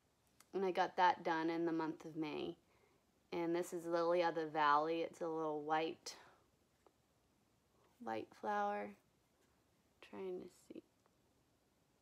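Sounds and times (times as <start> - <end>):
soft hiss: 0.0 - 12.0.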